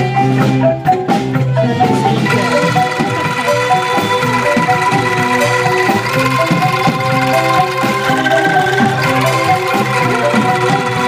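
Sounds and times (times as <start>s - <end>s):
bamboo xylophone notes: 0.0s - 11.0s
bass: 0.0s - 11.0s
drum kit beat: 0.0s - 11.0s
shaken bamboo rattles chords: 1.6s - 11.0s.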